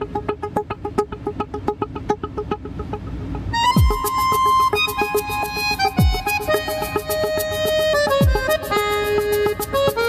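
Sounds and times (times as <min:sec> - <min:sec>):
fast staccato pitched notes: 0:00.0 - 0:10.0.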